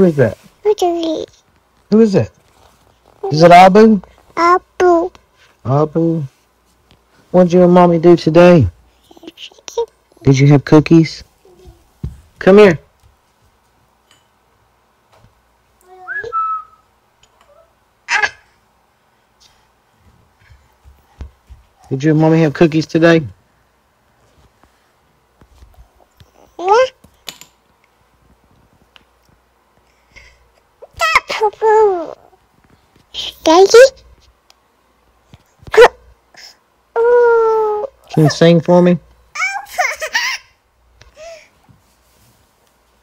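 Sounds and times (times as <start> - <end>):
rising whistle: 16.0 - 16.8.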